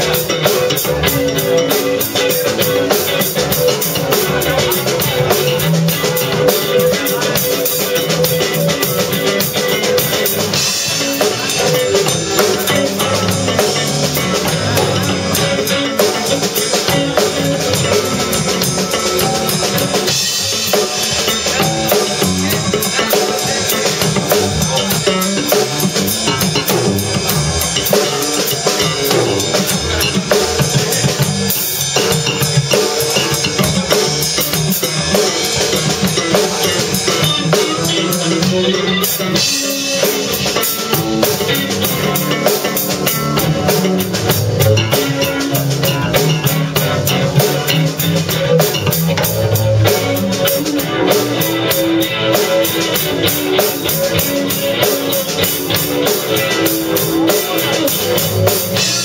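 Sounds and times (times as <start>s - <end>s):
drum kit: 0.0s - 59.0s
rock band playing: 0.0s - 59.0s.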